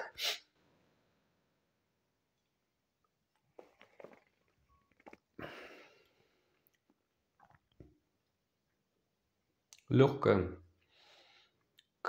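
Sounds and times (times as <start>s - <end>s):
man sipping and swallowing: 3.0s - 8.3s
lip and tongue clicks: 3.4s - 5.4s
breathy exhale: 10.9s - 11.6s.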